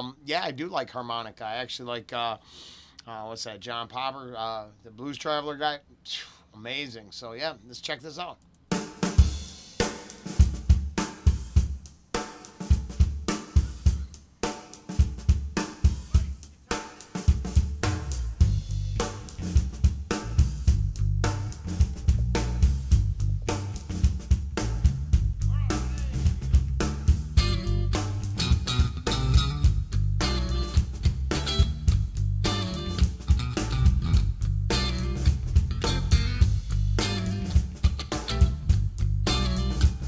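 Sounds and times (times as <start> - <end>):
rock drum kit groove: 8.6 - 40.0
low bass line: 17.9 - 37.6, 38.2 - 40.0.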